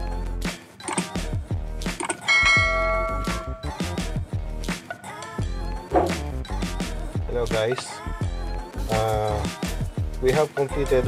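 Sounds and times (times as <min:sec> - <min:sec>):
notification bell chime: 0:02.3 - 0:03.8
intro music with bass drum beat: 0:05.8 - 0:07.6.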